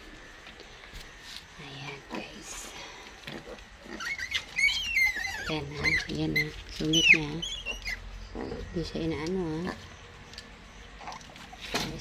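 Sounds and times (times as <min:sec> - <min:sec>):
piglets squealing: 0:03.2 - 0:08.7.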